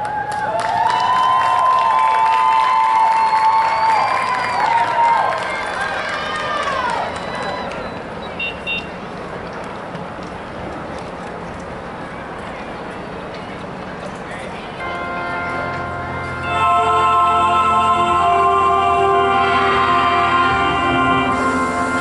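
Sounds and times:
scattered applause: 0.0s - 8.2s
stadium crowd cheering: 0.0s - 8.8s.

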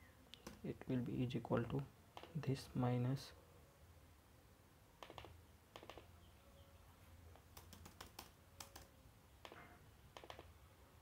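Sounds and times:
keyboard typing clicks: 5.0s - 6.1s, 7.4s - 10.5s.

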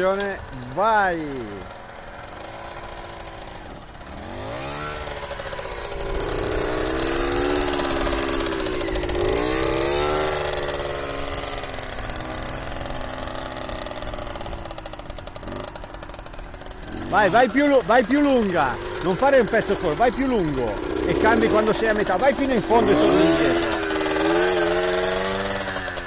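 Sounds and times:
motorcycle engine revving: 0.0s - 26.0s.

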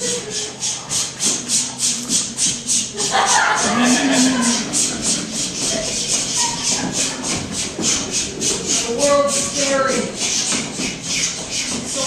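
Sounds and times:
shaker-like hissing beat: 0.0s - 12.0s.

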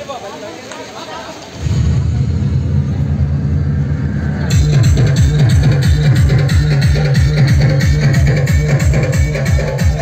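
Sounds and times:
electronic dance music: 1.6s - 10.0s.

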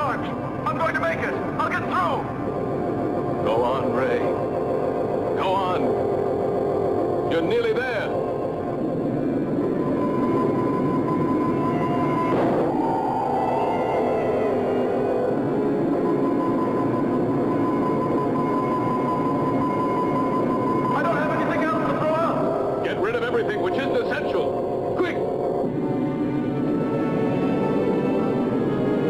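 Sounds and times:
science fiction film score: 0.0s - 29.0s
steady high electronic tone: 0.0s - 29.0s.

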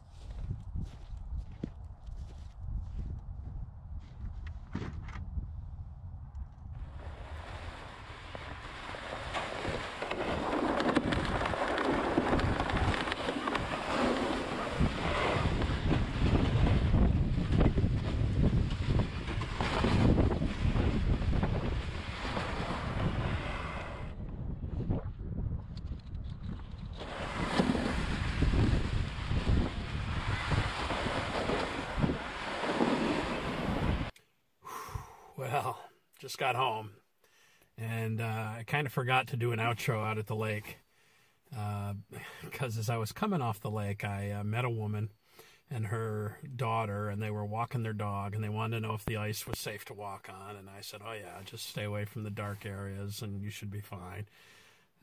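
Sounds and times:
wind buffeting microphone: 0.0s - 34.1s.

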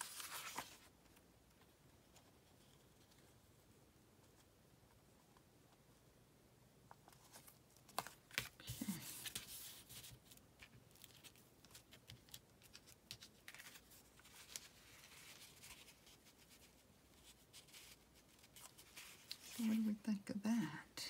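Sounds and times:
paper rustling: 0.0s - 3.4s, 7.0s - 19.9s.

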